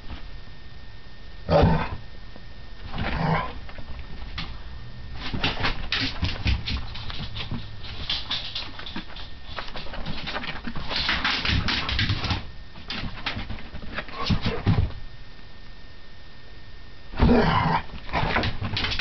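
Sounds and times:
scuffling clicks and knocks: 5.2 - 15.0, 18.0 - 19.0.

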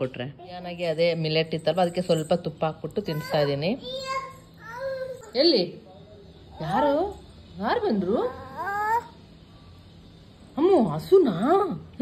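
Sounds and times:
toddler vocalizing: 8.3 - 9.2.

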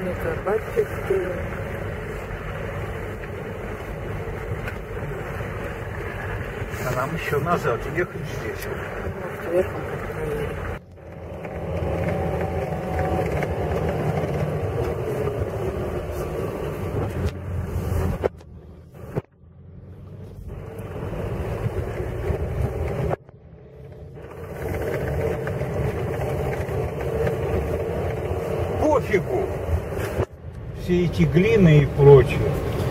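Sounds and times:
tyres rolling on dirt track: 0.0 - 32.9
vehicle engine running: 0.0 - 32.9.

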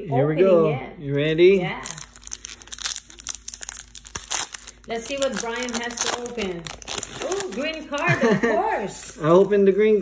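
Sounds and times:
foil wrapper crinkling and tearing: 1.8 - 8.0.

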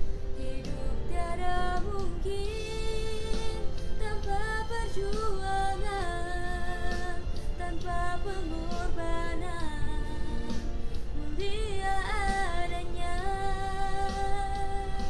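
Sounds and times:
girl singing: 0.4 - 10.4, 11.2 - 15.0.

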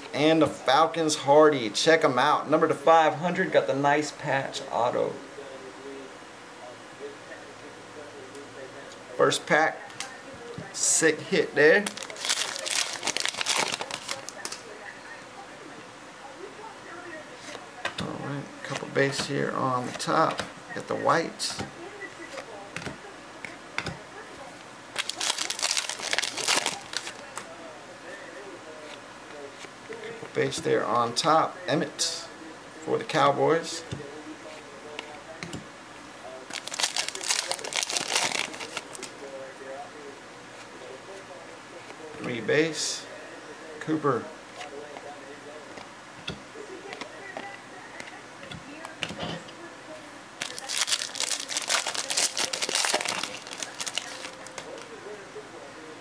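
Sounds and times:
foil wrapper tearing and crinkling: 11.8 - 14.6, 25.0 - 27.2, 36.5 - 39.1, 50.4 - 54.5
wrapper handling: 11.8 - 14.6, 24.9 - 27.3, 36.5 - 39.1, 50.4 - 54.8.

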